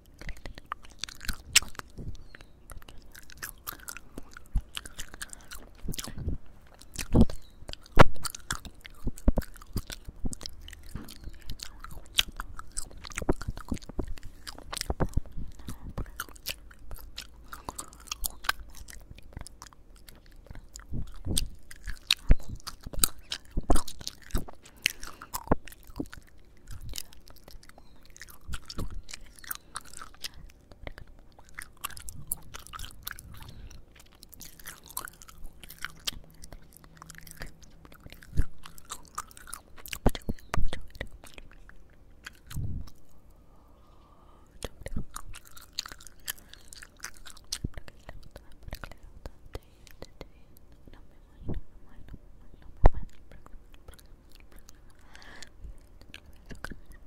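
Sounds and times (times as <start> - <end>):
mouth clicks: 0.0 - 43.2
gum chewing smacks: 0.0 - 43.4, 44.4 - 57.0.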